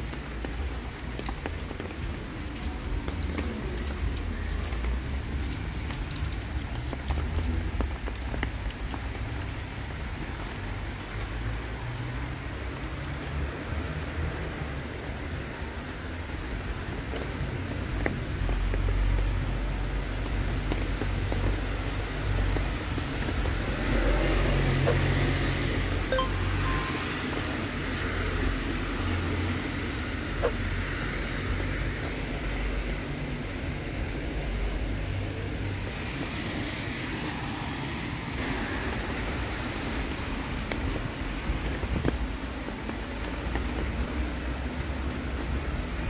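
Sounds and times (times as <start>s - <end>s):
cars passing on wet road: 0.0s - 46.0s.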